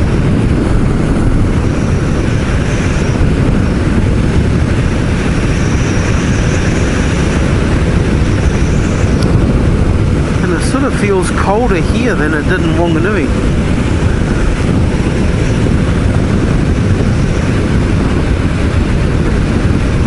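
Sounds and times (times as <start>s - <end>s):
motorcycle engine drone: 0.0s - 20.0s
wind rush: 0.0s - 20.0s.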